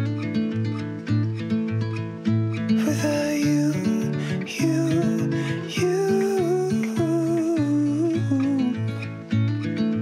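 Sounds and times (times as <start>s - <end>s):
plucked acoustic guitar: 0.0s - 10.0s
person singing long notes: 2.8s - 9.0s.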